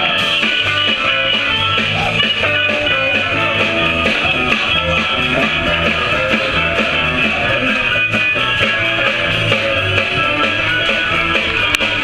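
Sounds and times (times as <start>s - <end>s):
blues band playing: 0.0s - 12.0s
electric guitar: 0.0s - 12.0s.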